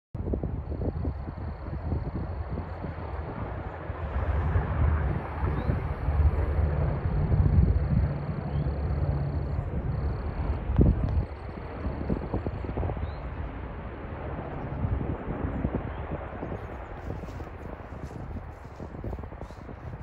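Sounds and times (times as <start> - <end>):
wind gusting on microphone: 0.2 - 20.0.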